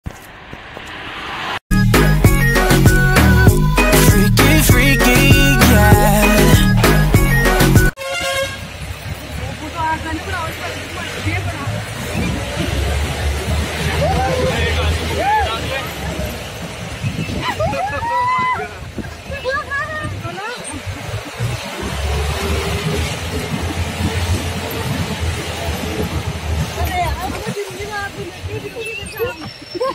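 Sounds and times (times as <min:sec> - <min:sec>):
vehicle engine rumbling: 0:00.0 - 0:29.9
vehicle horn toot: 0:08.0 - 0:08.8
voices: 0:09.0 - 0:29.9.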